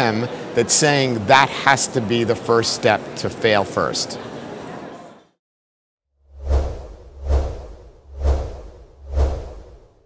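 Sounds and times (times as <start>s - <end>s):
whooshes: 6.3s - 10.0s.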